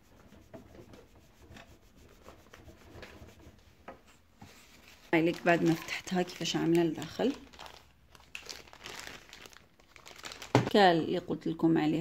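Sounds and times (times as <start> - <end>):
sponge scrubbing painted wood: 0.0 - 3.8.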